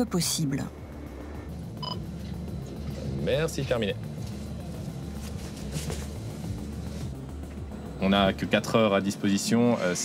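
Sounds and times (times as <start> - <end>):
steady low hum: 0.0 - 9.7
short electronic beep: 1.8 - 2.0.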